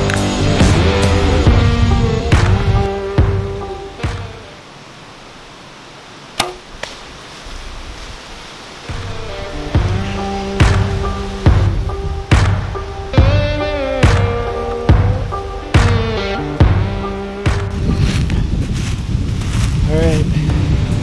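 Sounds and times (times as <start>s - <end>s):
rock music: 0.0s - 4.5s, 8.9s - 18.0s
bow being shot: 6.3s - 7.1s.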